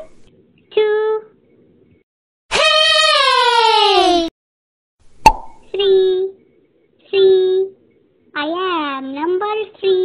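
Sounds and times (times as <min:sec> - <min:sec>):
cartoon pop sound effect: 0:05.2 - 0:05.6.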